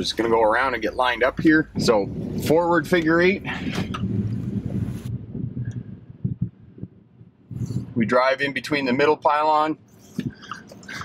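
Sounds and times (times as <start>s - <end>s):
car engine running: 0.0s - 8.1s
road noise: 0.0s - 11.0s
wind hiss on microphone: 1.4s - 8.0s.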